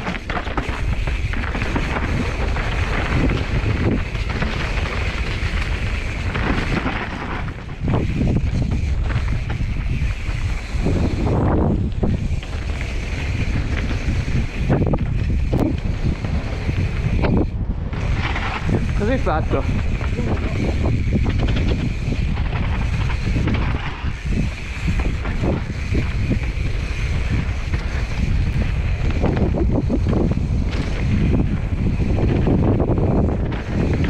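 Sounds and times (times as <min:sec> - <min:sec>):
bike rumbling and rattling: 0:00.0 - 0:34.0
wind buffeting microphone: 0:00.0 - 0:34.0.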